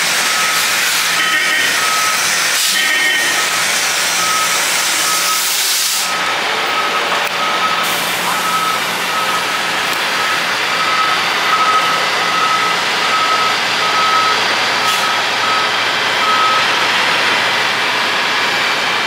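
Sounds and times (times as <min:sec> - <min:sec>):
reversing alarm beeping: 0:00.0 - 0:17.0
diesel coach engine running: 0:00.0 - 0:19.0.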